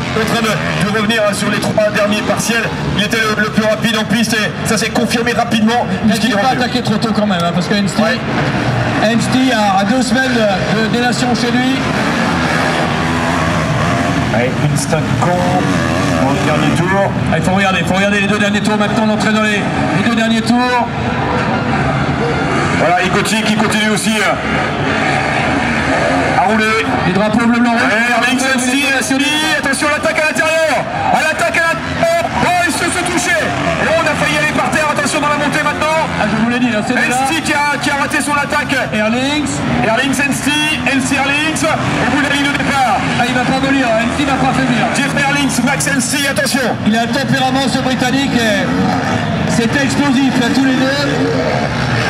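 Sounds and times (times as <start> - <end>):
man commentating: 0.0 - 21.0, 22.6 - 24.6, 26.3 - 52.0
motorbike engines revving: 0.0 - 52.0.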